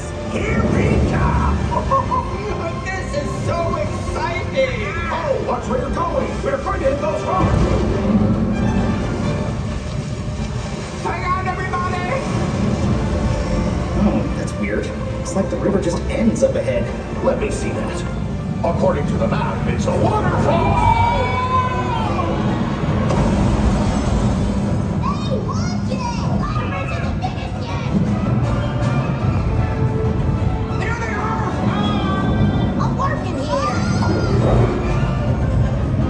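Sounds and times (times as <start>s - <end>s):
theatre music over speakers: 0.0s - 36.0s
rushing water effects: 5.3s - 16.0s, 18.1s - 25.9s
people shouting: 20.1s - 23.0s.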